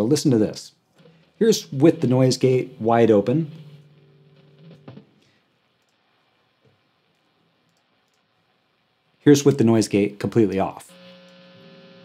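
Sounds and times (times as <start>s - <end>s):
faint click: 5.8s - 6.0s.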